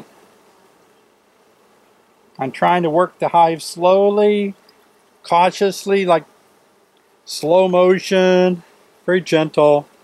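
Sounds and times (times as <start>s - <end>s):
honey bees humming: 0.0s - 10.0s.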